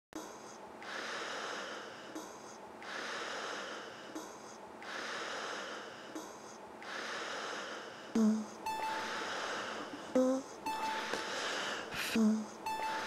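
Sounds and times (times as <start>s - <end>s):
breath-like noise swell: 6.8s - 12.2s
electronic pop beat: 8.2s - 13.0s.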